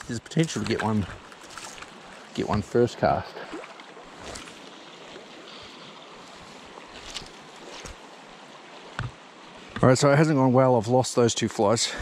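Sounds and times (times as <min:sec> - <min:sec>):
river water flowing: 0:00.0 - 0:12.0.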